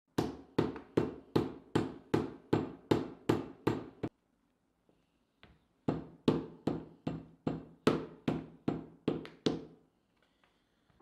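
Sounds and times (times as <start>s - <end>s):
wooden mallet beating clay: 0.1s - 4.1s, 5.4s - 9.8s.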